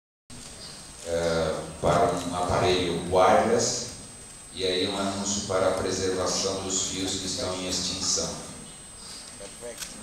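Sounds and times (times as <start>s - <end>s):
low steady hum: 0.3s - 10.0s
man talking: 1.0s - 8.7s, 9.4s - 10.0s.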